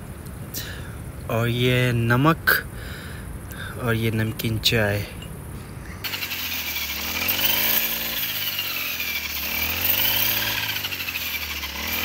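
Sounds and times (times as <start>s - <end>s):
brush cutter engine cutting: 6.0s - 12.0s.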